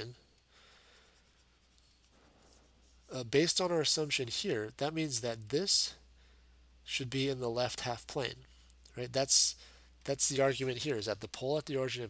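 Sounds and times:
stylus scratching on tablet: 0.9 - 3.2.

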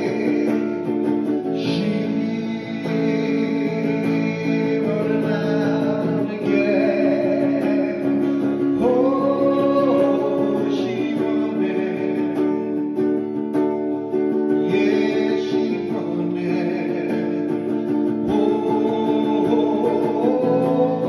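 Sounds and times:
man singing into microphone: 0.0 - 13.1, 14.4 - 21.0
electric guitar strumming chords: 0.0 - 21.0.

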